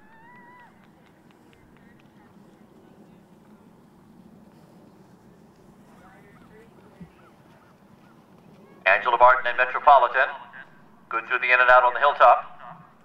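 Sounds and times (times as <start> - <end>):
distant geese honking: 0.0 - 9.0
man commentating: 8.9 - 12.9.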